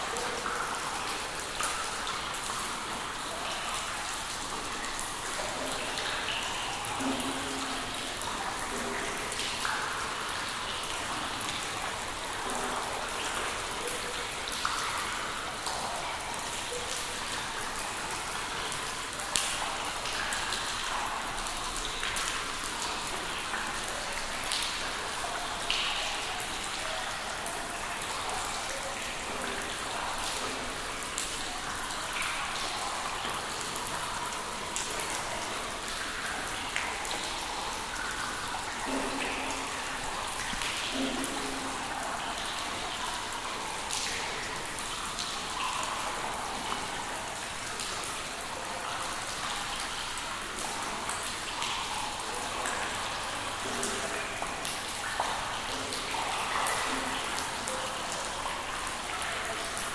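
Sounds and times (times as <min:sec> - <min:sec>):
water drops plinking into pool: 0:00.0 - 0:59.9.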